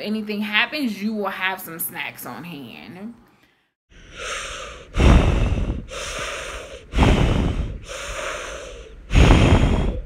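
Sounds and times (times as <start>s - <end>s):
person breathing deeply: 3.9s - 10.0s.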